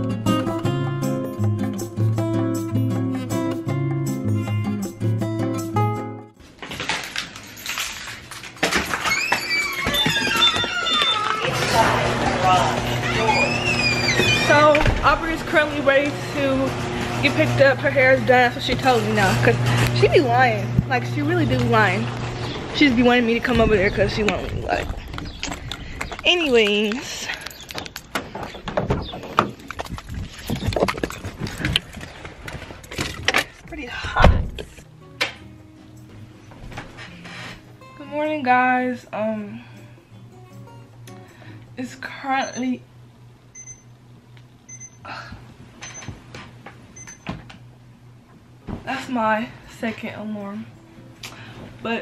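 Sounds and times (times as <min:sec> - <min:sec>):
acoustic guitar music: 0:00.0 - 0:06.4, 0:11.5 - 0:24.2, 0:34.8 - 0:42.8.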